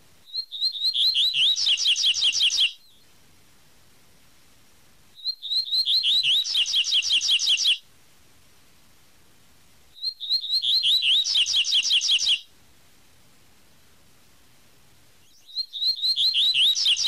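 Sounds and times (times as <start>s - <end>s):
bird singing high phrases: 0.2s - 3.1s, 5.2s - 7.8s, 10.0s - 12.5s, 15.2s - 17.0s.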